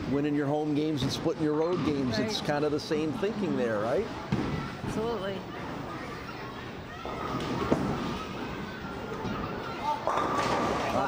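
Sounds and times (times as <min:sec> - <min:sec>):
bowling alley hum: 0:04.1 - 0:11.0
bowling ball rolling rumble: 0:09.1 - 0:11.0.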